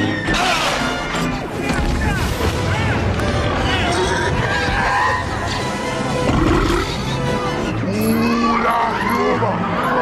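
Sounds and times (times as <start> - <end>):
orchestral film score: 0.0 - 10.0.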